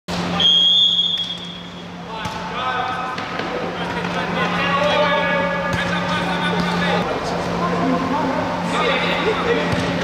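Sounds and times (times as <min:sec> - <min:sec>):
referee's whistle blast: 0:00.4 - 0:01.8.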